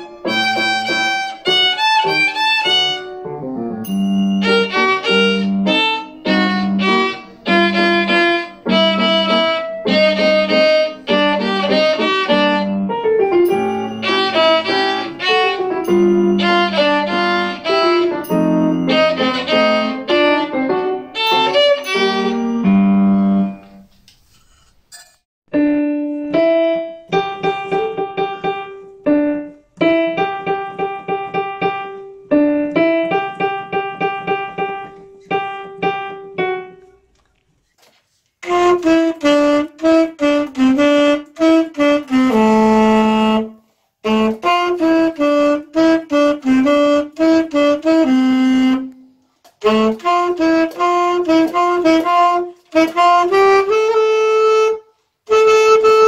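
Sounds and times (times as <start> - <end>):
saxophone melody: 0.0 - 23.8, 38.4 - 56.0
child playing piano melody: 0.0 - 23.9, 25.5 - 37.2, 38.4 - 49.0, 49.6 - 56.0.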